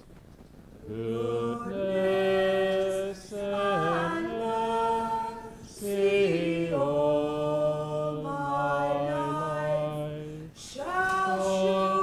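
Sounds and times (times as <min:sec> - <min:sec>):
person singing long held notes: 0:00.8 - 0:12.0.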